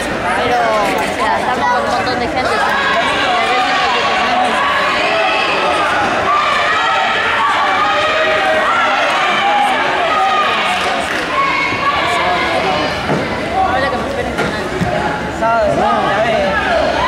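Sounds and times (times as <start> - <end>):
crowd of spectators chattering: 0.0 - 17.0.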